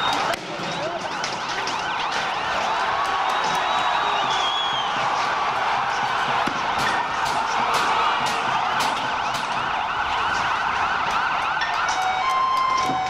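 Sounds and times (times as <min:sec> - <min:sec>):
police siren: 0:00.0 - 0:13.0
street noise: 0:00.0 - 0:13.0.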